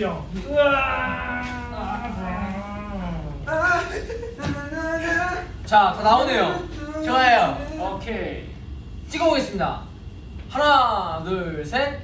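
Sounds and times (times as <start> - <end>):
man holding a low vowel: 0.4 - 5.7, 6.5 - 7.8.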